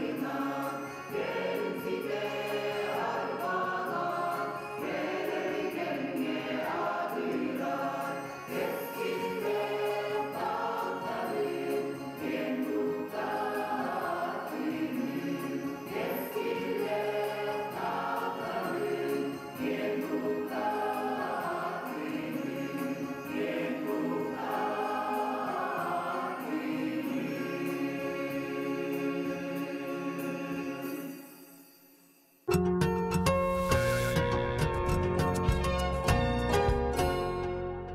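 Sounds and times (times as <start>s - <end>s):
mixed choir singing: 0.0s - 31.3s.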